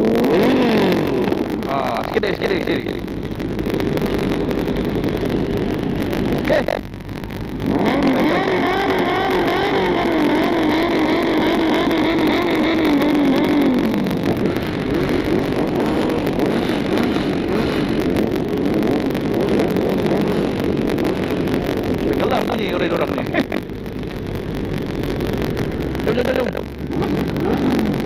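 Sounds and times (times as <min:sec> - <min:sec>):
motorbike engine revving: 0:00.0 - 0:28.0.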